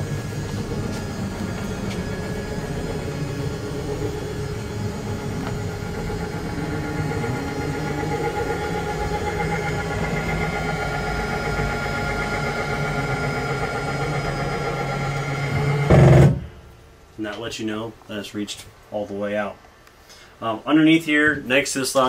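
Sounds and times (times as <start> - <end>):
electric motor humming: 0.0 - 16.3.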